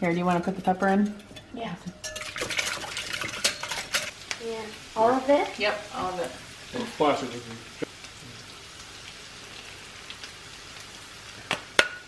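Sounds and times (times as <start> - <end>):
wire whisk clinking against glass: 2.0 - 2.3.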